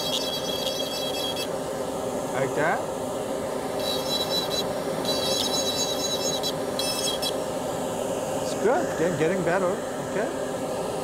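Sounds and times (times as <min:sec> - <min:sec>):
drill bur scraping acrylic: 0:00.0 - 0:01.5, 0:03.8 - 0:07.4
dental drill high whine: 0:00.0 - 0:01.6, 0:03.7 - 0:07.6.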